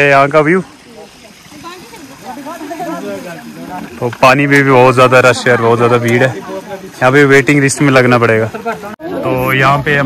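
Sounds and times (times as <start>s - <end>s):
running water hiss: 0.0s - 10.0s.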